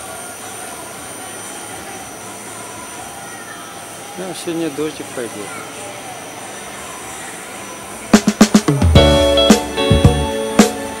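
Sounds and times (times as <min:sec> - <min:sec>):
steady background noise: 0:00.0 - 0:11.0
drum fill of snare and kick: 0:08.1 - 0:11.0
music track: 0:08.2 - 0:11.0.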